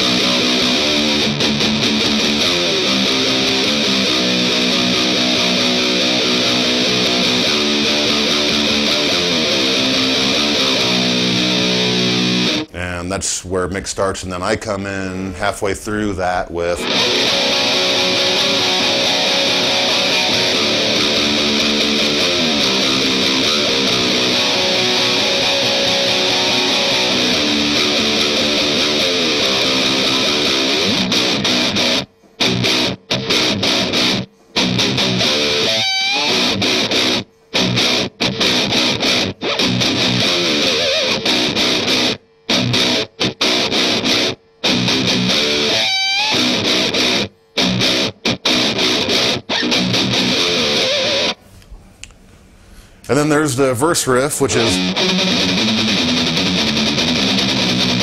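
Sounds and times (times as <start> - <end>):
guitar squealing note: 0.0 - 12.7, 15.2 - 51.4, 54.2 - 58.0
distorted electric guitar riff: 0.0 - 51.5, 52.8 - 58.0.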